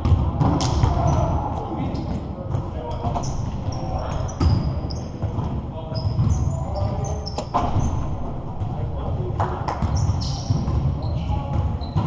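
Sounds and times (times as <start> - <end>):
sneakers squeaking: 0.0 - 8.3, 9.7 - 12.0
players' voices: 0.0 - 12.0
basketball bouncing on hardwood floor: 9.8 - 10.9.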